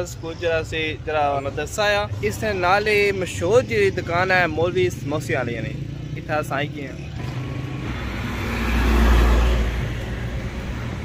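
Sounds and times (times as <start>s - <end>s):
vehicle passing by: 7.1s - 11.0s.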